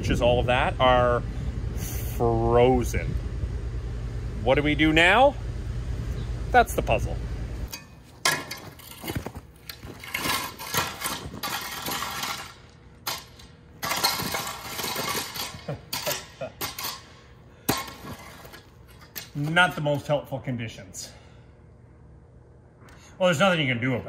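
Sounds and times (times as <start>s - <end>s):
rake scraping frozen soil: 8.6s - 12.6s.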